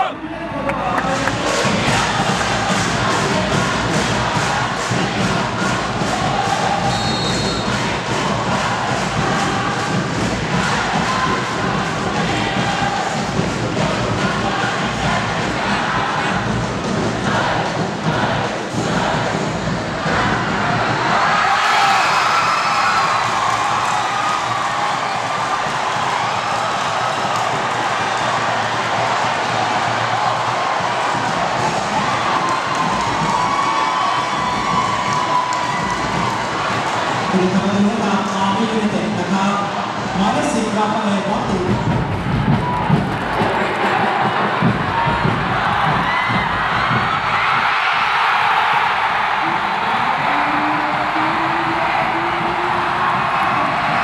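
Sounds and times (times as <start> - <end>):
rhythmic beat: 0.0 - 54.0
stadium crowd chanting and cheering: 0.0 - 54.0.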